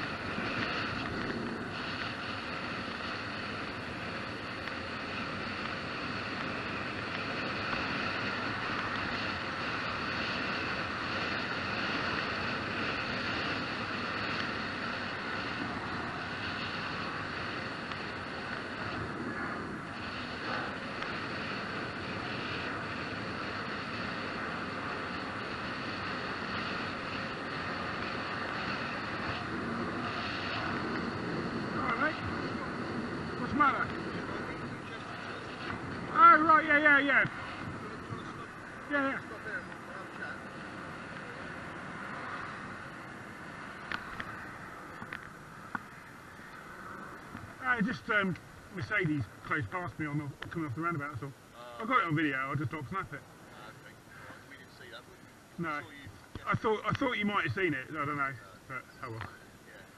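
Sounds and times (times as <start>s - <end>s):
wind rush: 0.0s - 53.5s
tyre and road noise: 0.0s - 59.9s.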